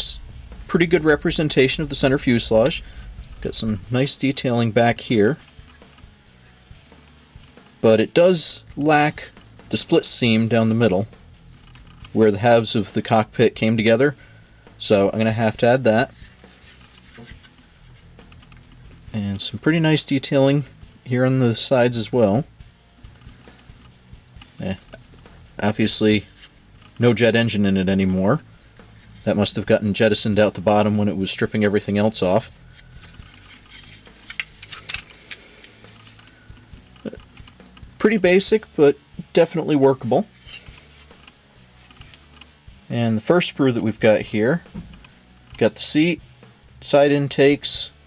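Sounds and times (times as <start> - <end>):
plastic parts clicking and rattling: 11.5 - 12.2, 26.4 - 27.0, 32.8 - 37.9
plastic rubbing in hands: 16.1 - 19.1, 32.4 - 37.6.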